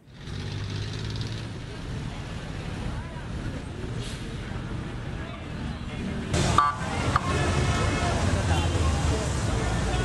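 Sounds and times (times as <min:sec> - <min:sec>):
street traffic rumble: 0:00.0 - 0:10.0
faint voices: 0:01.6 - 0:10.0.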